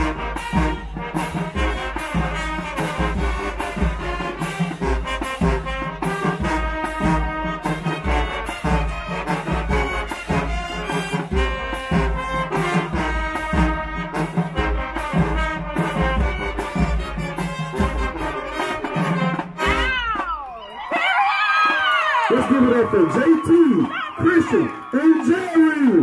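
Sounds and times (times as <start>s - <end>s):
marching band playing: 0.0s - 26.0s.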